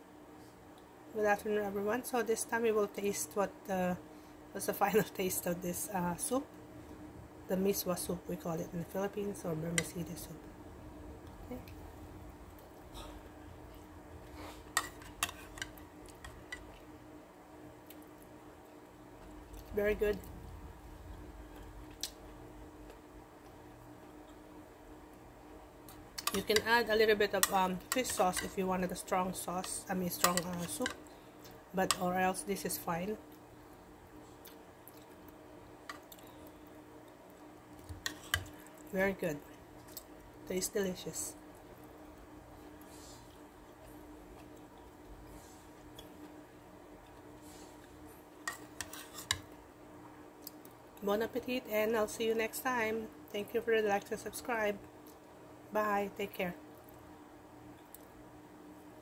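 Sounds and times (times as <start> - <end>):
faint steady hum: 0.0 - 59.0
metal spoon scraping in a bowl: 48.5 - 49.4.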